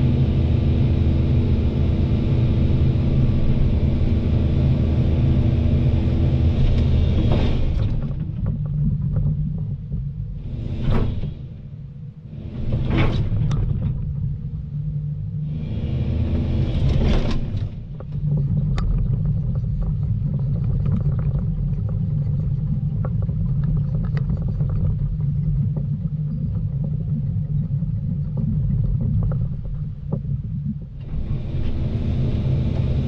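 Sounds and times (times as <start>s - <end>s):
sharp clicks and snaps: 16.9s - 27.6s.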